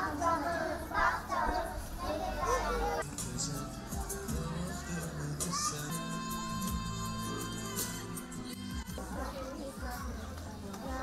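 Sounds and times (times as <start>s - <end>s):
children chattering and calling out: 0.0s - 3.1s, 4.1s - 11.0s.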